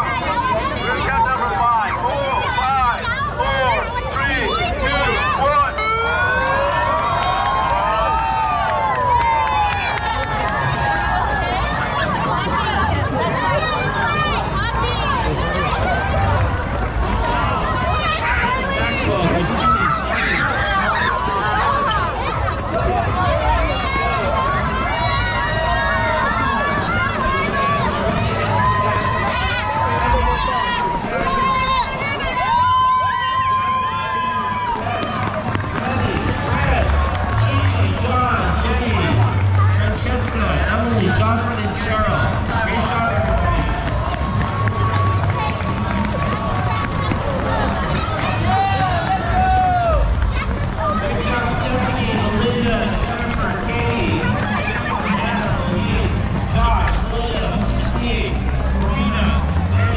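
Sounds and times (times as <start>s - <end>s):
chatter: 0.0s - 59.9s
children shouting and cheering: 0.0s - 59.9s
running footsteps on pavement: 0.0s - 59.9s.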